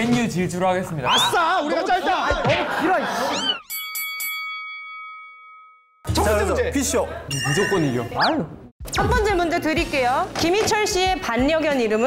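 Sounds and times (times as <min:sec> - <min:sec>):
bell-like chime: 0:03.6 - 0:06.1, 0:07.3 - 0:08.1.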